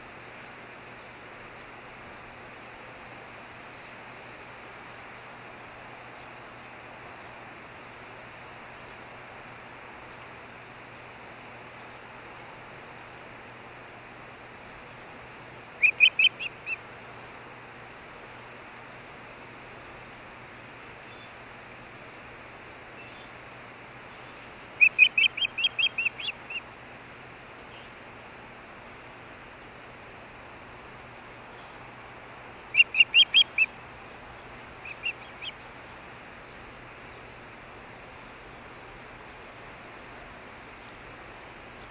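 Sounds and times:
bird whistled chirps: 0:15.8 - 0:16.6, 0:24.8 - 0:26.6, 0:32.5 - 0:33.7, 0:34.9 - 0:35.5.

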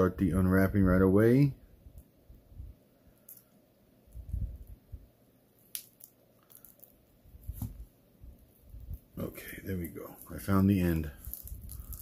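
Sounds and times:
soft bumps and crinkles: 0:05.6 - 0:12.0
fingernails picking plastic film: 0:09.9 - 0:12.0.

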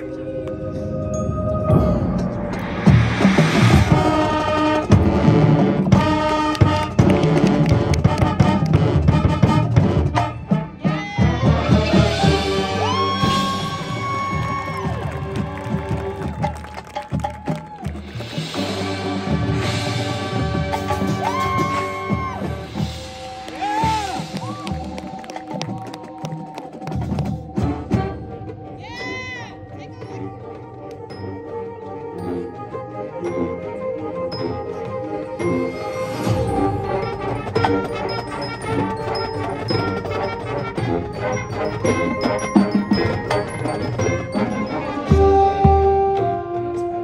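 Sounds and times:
marching band playing: 0:00.0 - 0:47.0
sharp percussion hit: 0:01.4 - 0:06.2.

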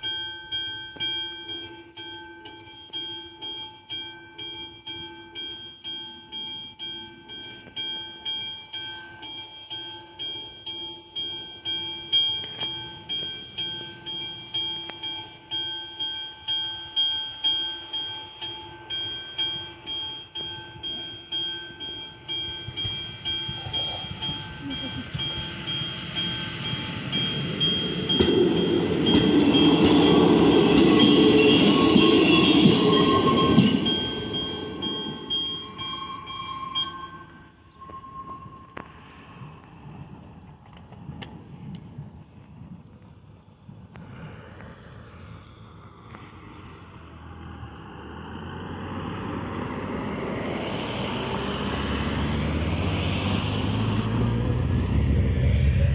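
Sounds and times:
level crossing bell ringing: 0:00.0 - 0:38.8
diesel railbus passing: 0:00.0 - 0:55.9
cars driving by: 0:20.2 - 0:41.2, 0:43.8 - 0:55.9
high wheel squeal: 0:28.9 - 0:39.7
motorcycle driving by: 0:47.0 - 0:55.9.

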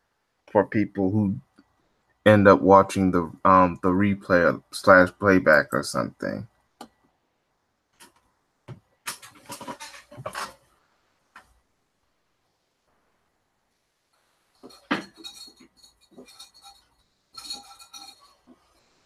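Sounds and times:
small hard objects clinking: 0:14.6 - 0:18.5.

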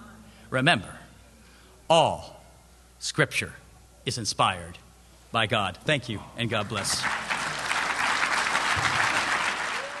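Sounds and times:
congregation applauding: 0:06.6 - 0:10.0.

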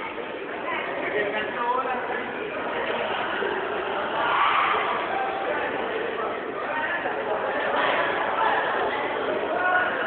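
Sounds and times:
crowd voices din: 0:00.0 - 0:10.0.

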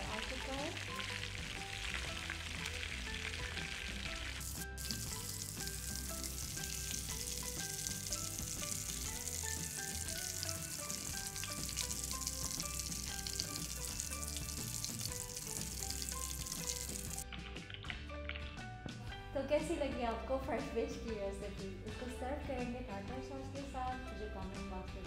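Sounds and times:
fish frying in hot oil: 0:00.0 - 0:17.9
background music: 0:00.0 - 0:25.0.

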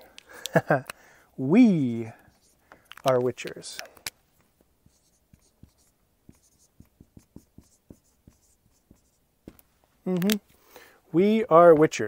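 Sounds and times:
marker writing on whiteboard: 0:01.8 - 0:04.0, 0:04.7 - 0:09.6.

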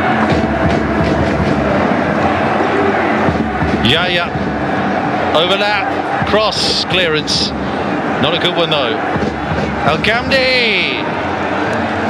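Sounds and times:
stadium crowd roar: 0:00.0 - 0:12.0.

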